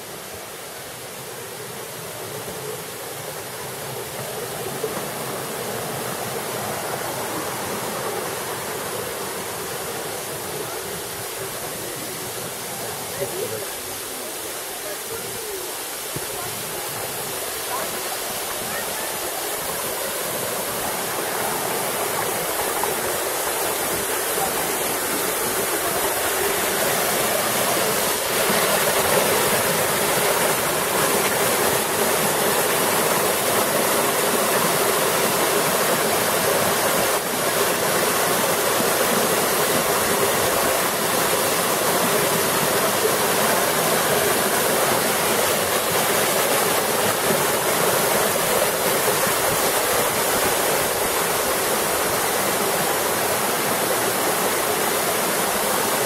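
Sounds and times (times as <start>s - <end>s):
waterfall rushing onto rocks: 0.0s - 56.0s.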